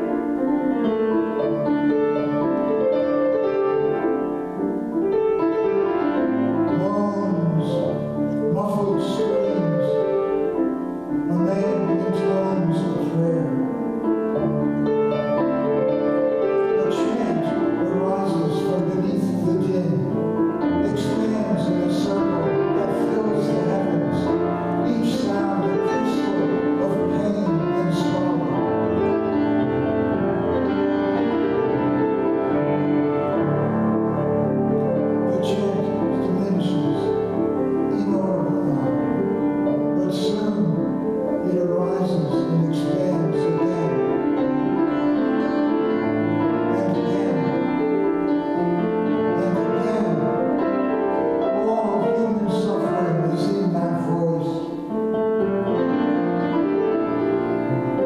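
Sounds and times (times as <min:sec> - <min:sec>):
grand piano playing chords: 0:00.0 - 0:58.0.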